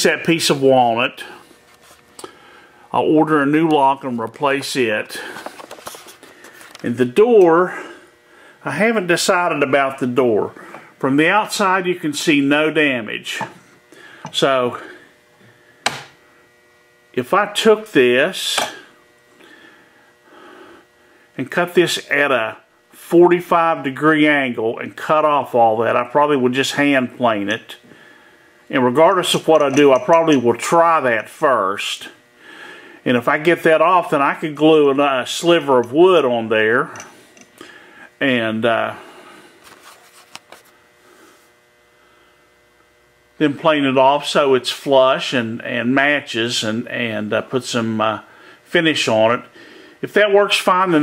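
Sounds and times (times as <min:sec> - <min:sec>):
electrical hum: 0:00.0 - 0:51.0.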